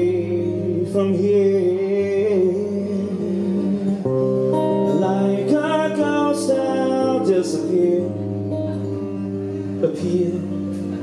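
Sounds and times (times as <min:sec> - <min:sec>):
person singing: 0:00.0 - 0:11.0
strummed acoustic guitar: 0:00.0 - 0:11.0.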